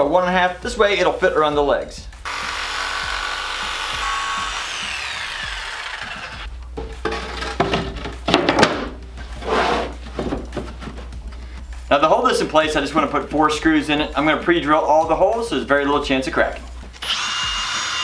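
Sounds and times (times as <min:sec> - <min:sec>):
jigsaw cutting plywood: 0:02.3 - 0:06.5, 0:17.0 - 0:18.0
wooden knocks and scrapes: 0:06.8 - 0:11.5.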